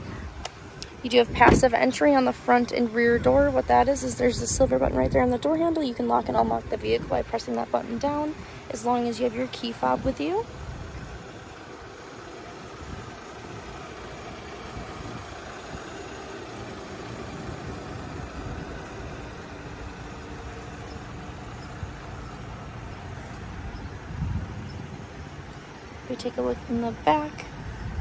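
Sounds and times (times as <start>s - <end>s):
car engine idling: 0.0s - 28.0s.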